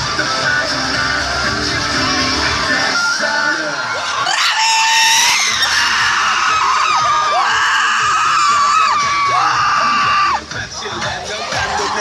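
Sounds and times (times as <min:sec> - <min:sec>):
dance pop song on speakers: 0:00.0 - 0:12.0
audience screaming: 0:01.9 - 0:10.5, 0:11.3 - 0:12.0.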